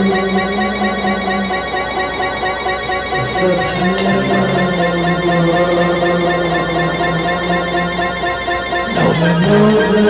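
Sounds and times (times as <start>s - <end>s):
sustained ringing chord: 0.0s - 10.0s.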